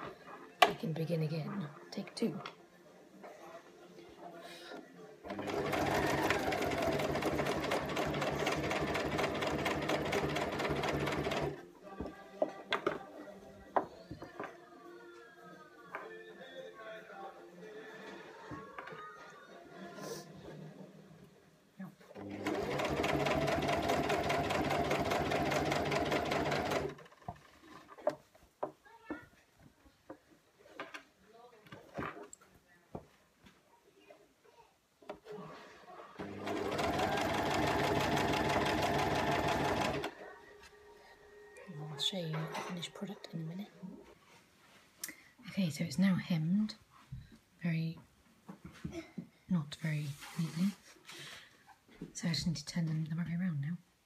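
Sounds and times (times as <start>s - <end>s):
sewing machine stitching: 5.3s - 11.6s, 22.1s - 28.0s, 36.2s - 40.2s.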